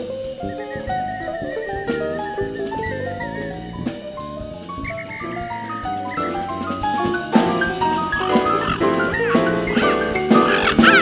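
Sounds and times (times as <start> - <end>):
bass guitar and drums: 0.0 - 11.0
high wavering whistle-like tone: 0.0 - 11.0.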